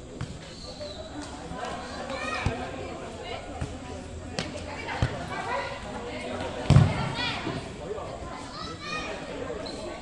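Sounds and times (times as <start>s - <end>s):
ball being struck thud: 6.7s - 7.0s.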